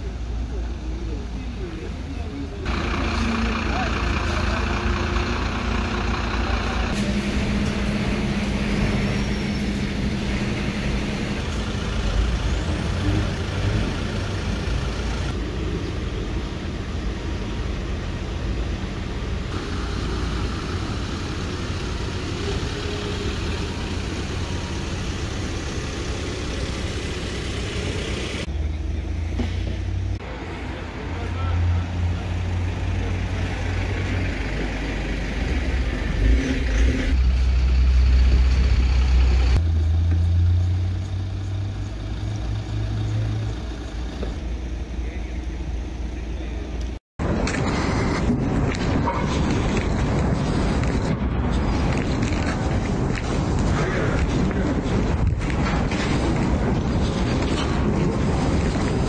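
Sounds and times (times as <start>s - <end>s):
vehicle engines idling: 0.0s - 59.0s.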